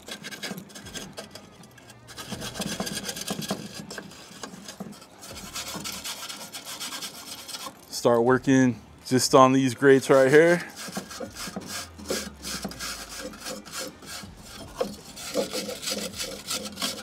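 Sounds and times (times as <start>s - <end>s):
metal brush scraping: 0.0s - 17.0s.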